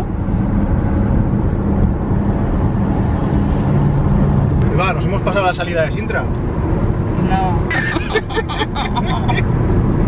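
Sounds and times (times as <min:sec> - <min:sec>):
tyre and engine rumble: 0:00.0 - 0:10.0.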